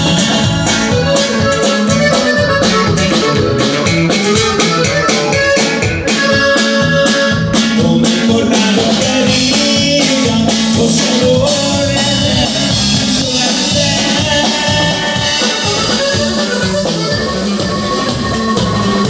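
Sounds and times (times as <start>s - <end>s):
band music with drum beat: 0.0s - 19.0s.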